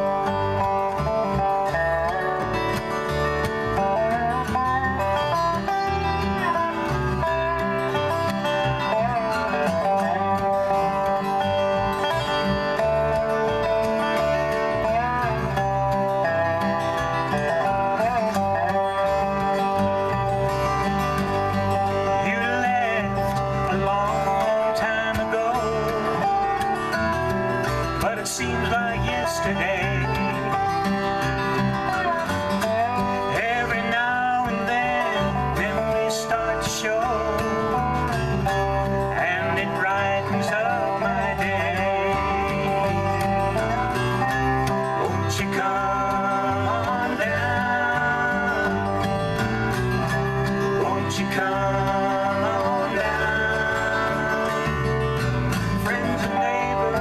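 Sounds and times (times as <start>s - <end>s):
electric bass line: 0.0s - 57.0s
sliding dobro notes: 0.0s - 57.0s
strummed acoustic guitar: 0.0s - 57.0s.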